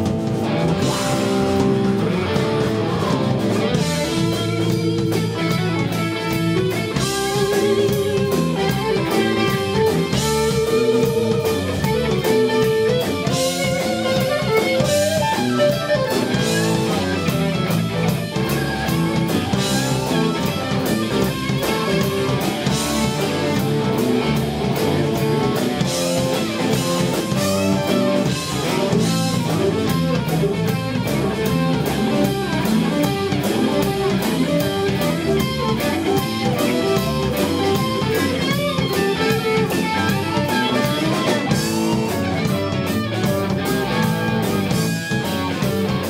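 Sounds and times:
bass guitar: 0:00.0 - 0:46.0
drum kit beat: 0:00.0 - 0:46.0
electric guitars: 0:00.0 - 0:46.0.

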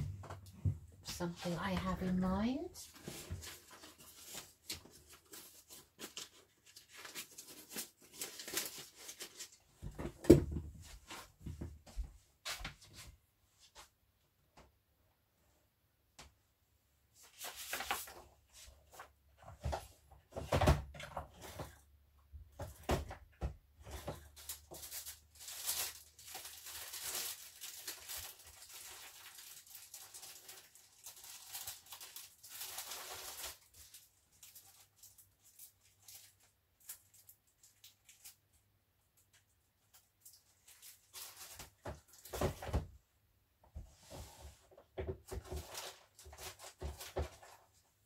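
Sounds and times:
paper rustling: 0:02.8 - 0:09.7, 0:17.2 - 0:19.9, 0:23.8 - 0:37.1.

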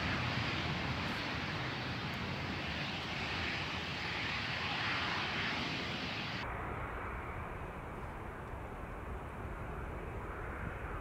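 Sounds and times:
jet engine rumble: 0:00.0 - 0:11.0.

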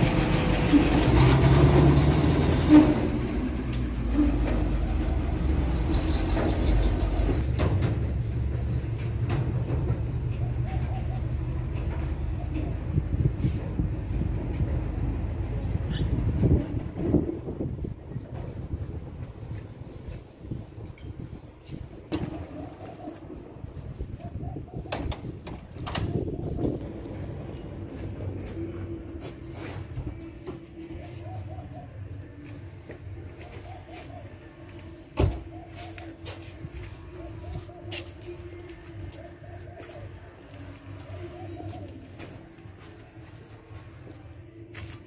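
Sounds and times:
bird cooing: 0:10.3 - 0:11.6, 0:22.2 - 0:23.4, 0:30.8 - 0:32.4, 0:33.3 - 0:34.7, 0:35.4 - 0:36.3, 0:37.2 - 0:42.5.

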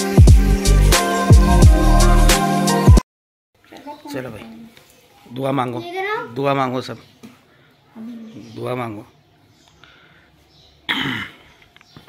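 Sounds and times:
person coughing: 0:10.9 - 0:11.5.

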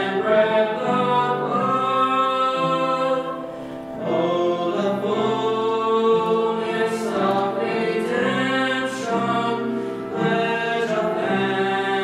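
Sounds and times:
woman and man singing a hymn: 0:00.0 - 0:12.0.

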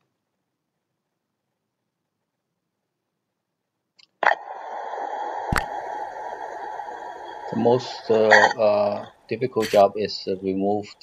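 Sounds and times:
steady background hiss: 0:04.1 - 0:11.0.

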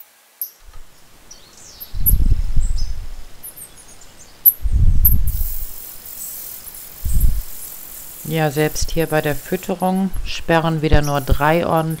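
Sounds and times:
nestlings cheeping: 0:00.8 - 0:12.0
loud low rumbles: 0:04.6 - 0:05.5
hissing begging chorus: 0:05.3 - 0:12.0.

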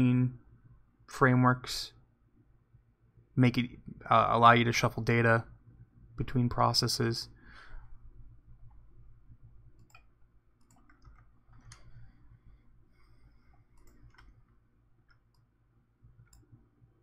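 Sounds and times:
low steady hum: 0:00.0 - 0:17.0
computer mouse clicks: 0:09.8 - 0:12.1, 0:13.5 - 0:15.5, 0:16.2 - 0:16.5.

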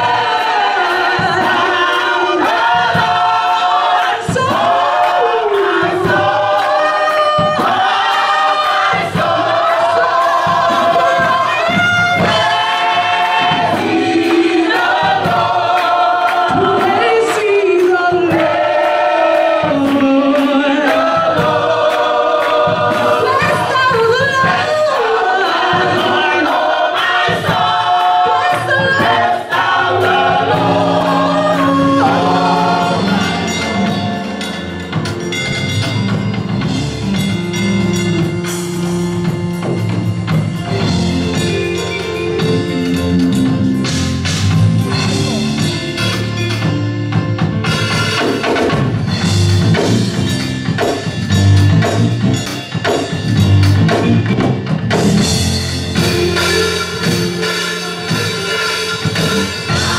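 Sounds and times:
gospel choir singing: 0:00.0 - 0:37.6, 0:38.2 - 0:46.8, 0:52.9 - 0:59.9
steady beat: 0:00.0 - 0:46.9, 0:47.5 - 0:59.9
woman singing into microphone: 0:23.2 - 0:25.2.

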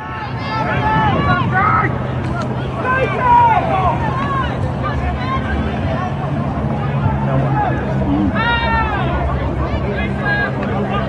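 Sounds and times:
spectators shouting: 0:00.0 - 0:11.0.

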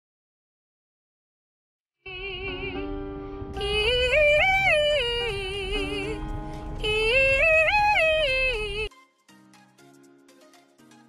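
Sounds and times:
woman singing: 0:02.1 - 0:03.0, 0:03.6 - 0:08.9
car cabin rumble: 0:02.3 - 0:08.9.

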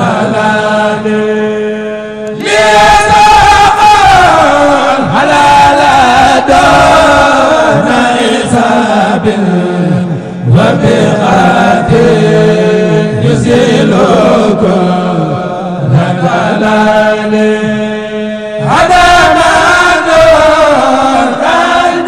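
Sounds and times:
man chanting religious song: 0:00.0 - 0:22.0.

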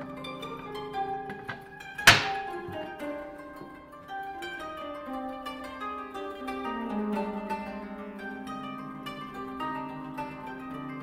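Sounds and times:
plucked string music: 0:00.0 - 0:11.0
wooden panel thunk: 0:01.3 - 0:02.5.

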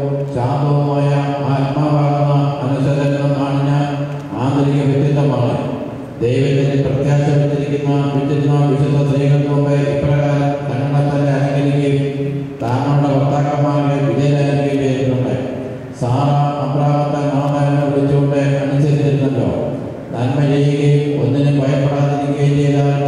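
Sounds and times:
man chanting a prayer: 0:00.0 - 0:23.0.

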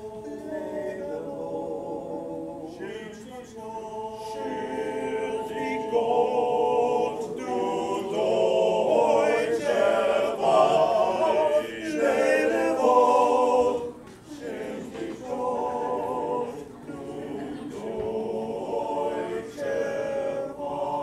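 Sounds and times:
men's choir singing a cappella: 0:00.0 - 0:21.0.

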